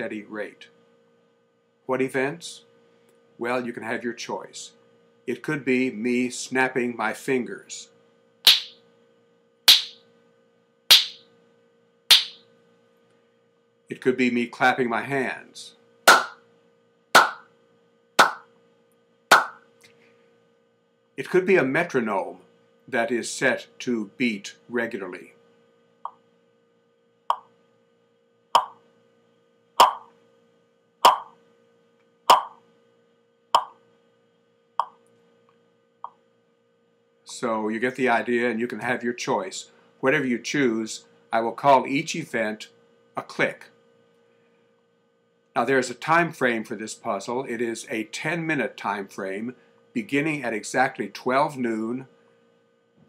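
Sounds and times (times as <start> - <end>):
finger snapping: 18.2 - 18.4, 19.3 - 19.6, 29.8 - 30.0.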